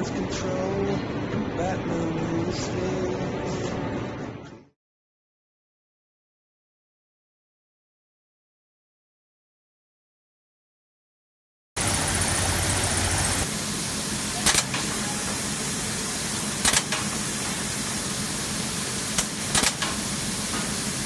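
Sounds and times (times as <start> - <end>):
carton gluing machine running: 11.8 - 21.0
sharp machine clicks: 14.3 - 15.4, 16.3 - 17.7, 18.9 - 20.8.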